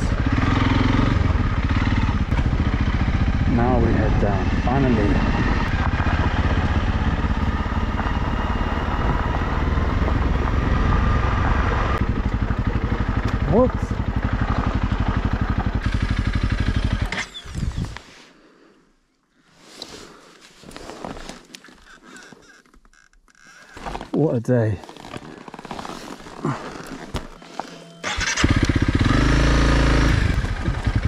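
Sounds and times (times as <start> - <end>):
motorcycle engine running at low revs: 0.0 - 18.0, 26.0 - 31.0.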